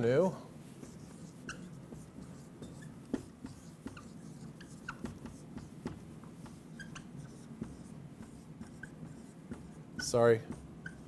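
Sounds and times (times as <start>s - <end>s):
low steady room hum: 0.0s - 11.0s
marker scratching on whiteboard: 0.7s - 11.0s.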